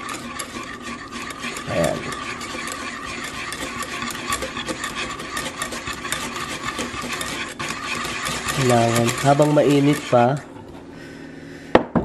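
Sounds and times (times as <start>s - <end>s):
whisk scraping metal pan: 0.0s - 10.9s.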